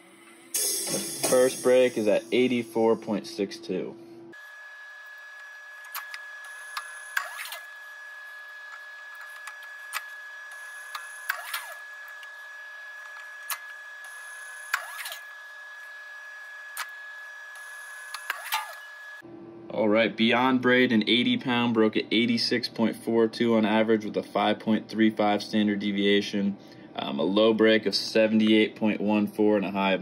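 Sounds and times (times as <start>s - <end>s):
machine high-pitched whine: 0.0s - 25.8s.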